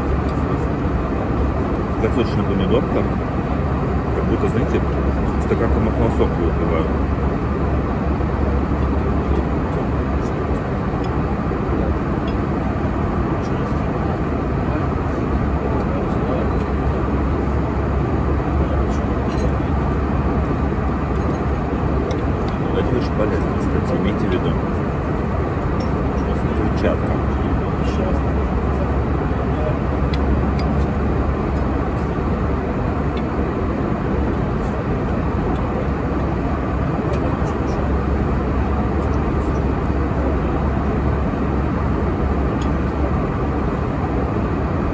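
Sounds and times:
airliner cabin noise: 0:00.0 - 0:44.9.

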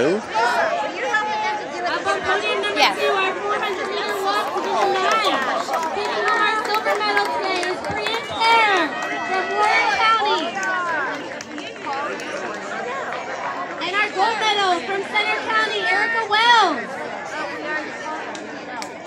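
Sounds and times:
overlapping chatter of voices: 0:00.0 - 0:19.0.

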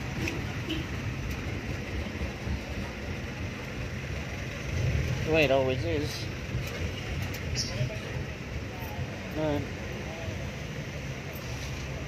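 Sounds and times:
road noise: 0:00.0 - 0:12.0
vehicle engine low rumble: 0:00.0 - 0:12.0.

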